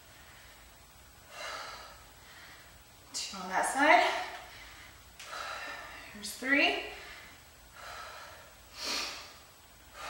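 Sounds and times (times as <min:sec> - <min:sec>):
woman breathing with effort: 0:00.0 - 0:03.0, 0:04.0 - 0:06.2, 0:06.8 - 0:10.0.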